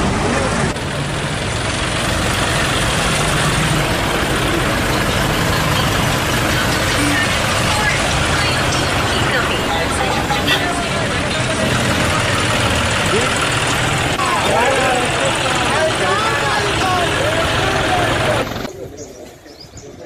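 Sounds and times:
people talking: 0.0s - 0.8s, 2.0s - 20.0s
vehicle engine idling: 0.0s - 19.2s.

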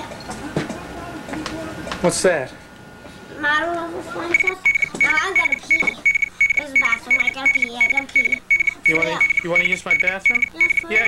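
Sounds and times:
voices talking: 0.0s - 11.0s
electronic alarm beeping rapidly: 4.3s - 11.0s.

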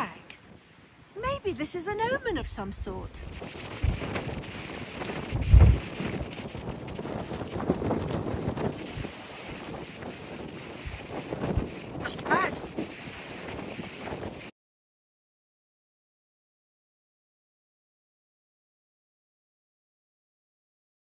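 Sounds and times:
gusty wind buffeting microphone: 0.4s - 14.5s.

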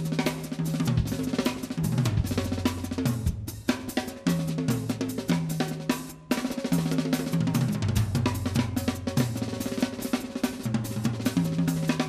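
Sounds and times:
drum solo: 0.0s - 12.0s.

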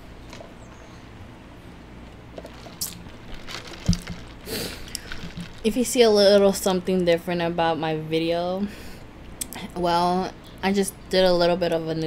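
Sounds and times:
paper cup rustling: 2.0s - 6.1s.

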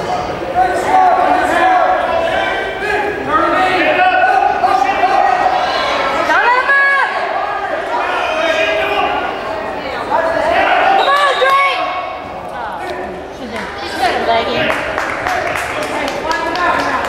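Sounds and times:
spectators chattering in hall: 0.0s - 17.0s.

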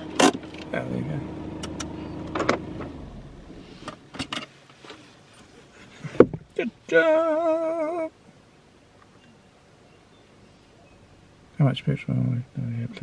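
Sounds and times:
low hum: 0.0s - 4.3s.

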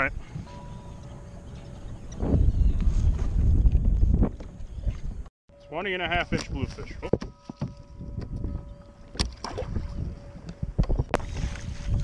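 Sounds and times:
wind buffeting microphone: 0.0s - 5.3s, 6.1s - 12.0s.

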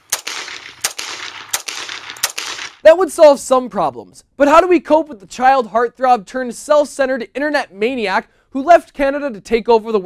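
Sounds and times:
pistol shots with echo: 0.0s - 2.8s.

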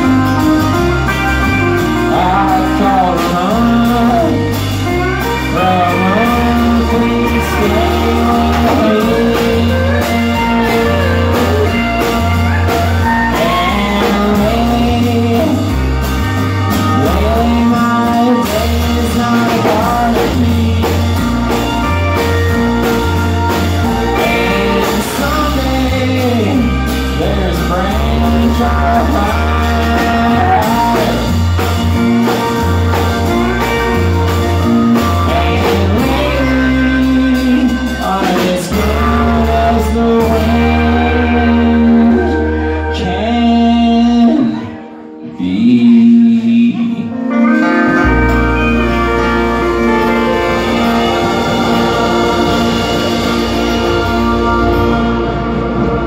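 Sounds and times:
sliding melody line: 0.0s - 44.4s, 47.4s - 56.0s
drums: 0.0s - 56.0s
keyboard: 0.0s - 56.0s
low bass notes: 0.0s - 56.0s.

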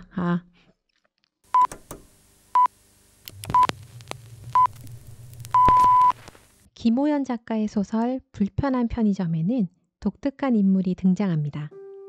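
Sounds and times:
radio time signal pips: 1.5s - 1.9s, 2.5s - 6.7s
low rumble: 3.3s - 6.6s.

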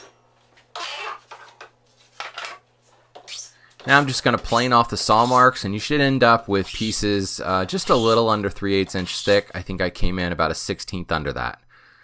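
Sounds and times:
tools scraping and knocking on wood: 0.0s - 5.5s.

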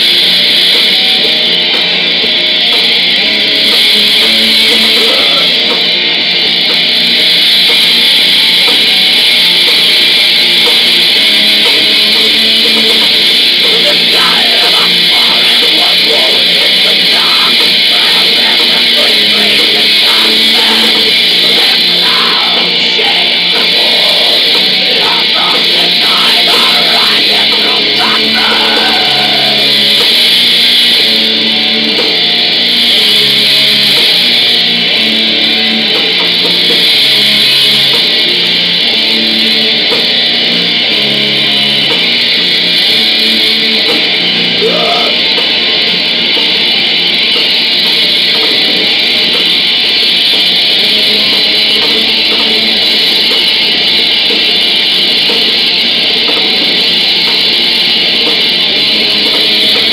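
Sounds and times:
bass line: 0.0s - 59.9s
distorted guitars: 0.0s - 59.9s.

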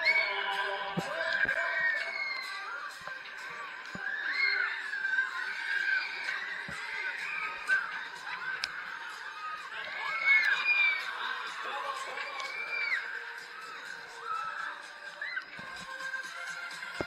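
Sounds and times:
loud fairground music: 0.0s - 17.0s
riders screaming: 1.0s - 2.8s, 4.0s - 15.9s.

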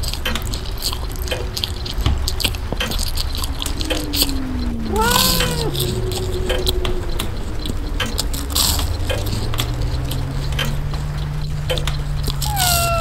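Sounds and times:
low tone sliding downward: 0.4s - 13.0s
short tone rising and falling: 1.1s - 11.4s.

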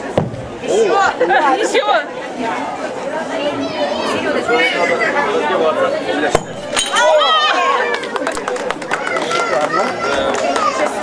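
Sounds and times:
crowd chatter: 0.0s - 11.0s
plate smashing: 6.4s - 7.3s.

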